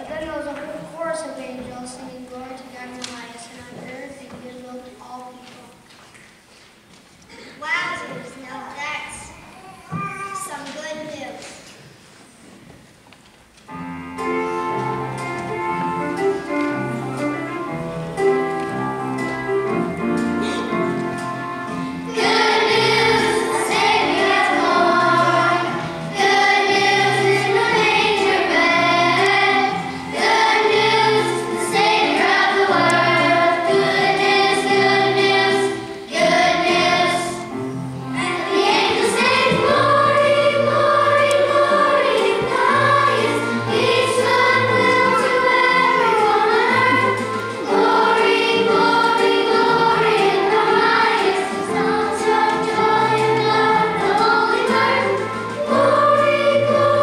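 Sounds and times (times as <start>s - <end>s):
children's choir singing: 13.7s - 57.0s.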